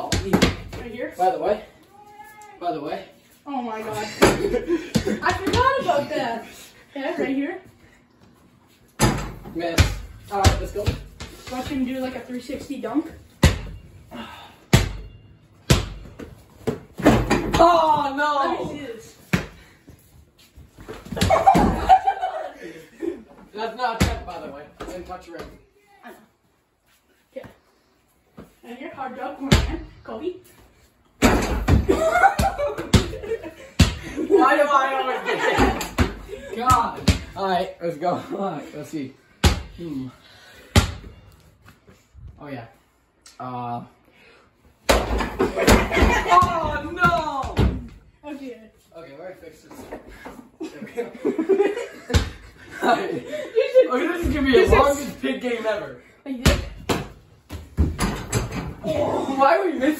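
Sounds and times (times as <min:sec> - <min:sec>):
basketball thudding: 0:56.4 - 0:58.8.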